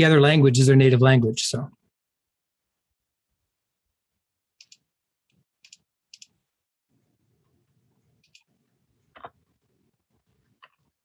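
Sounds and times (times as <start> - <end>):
computer mouse clicks: 4.6 - 6.4, 8.2 - 8.5, 10.6 - 10.9.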